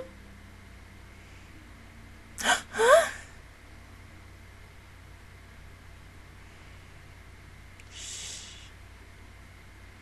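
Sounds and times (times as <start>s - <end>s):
woman gasping: 2.4s - 3.3s.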